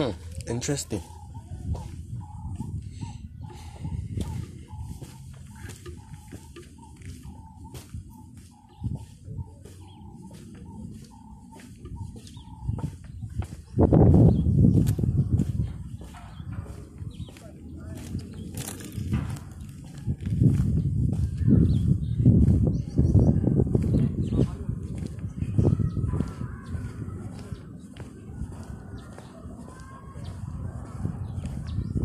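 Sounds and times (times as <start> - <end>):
footsteps on stone: 0.2 - 32.0.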